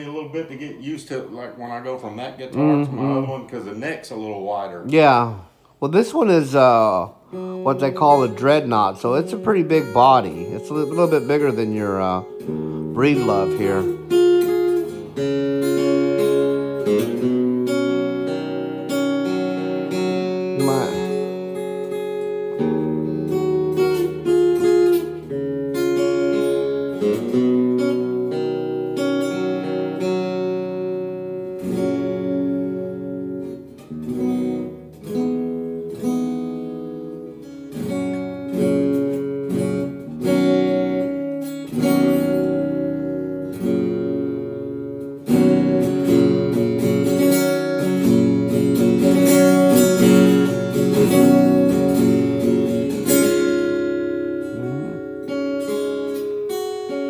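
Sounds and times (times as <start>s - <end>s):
acoustic guitar strumming chords: 0.0s - 57.0s.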